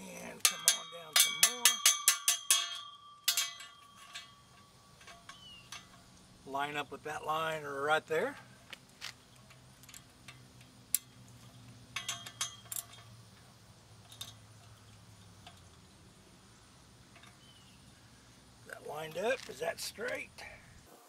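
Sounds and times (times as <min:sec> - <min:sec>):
hand tool clinking on metal pipe: 0:00.2 - 0:06.2, 0:09.3 - 0:16.2, 0:17.1 - 0:17.6.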